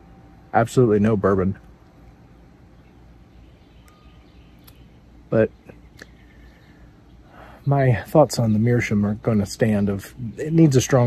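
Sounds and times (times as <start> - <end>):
faint chirp: 0.0 - 11.0
steady low rumble: 0.0 - 11.0.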